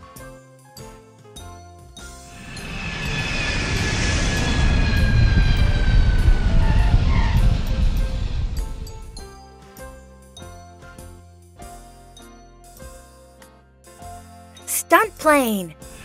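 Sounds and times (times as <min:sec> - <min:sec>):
airplane engine fly-by: 0:02.2 - 0:09.2
falling engine whine: 0:02.3 - 0:09.2.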